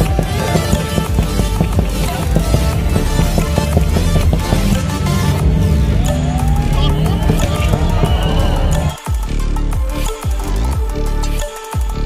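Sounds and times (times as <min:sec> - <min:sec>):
car engine revving: 0:00.0 - 0:11.4
music with heavy bass: 0:00.0 - 0:12.0.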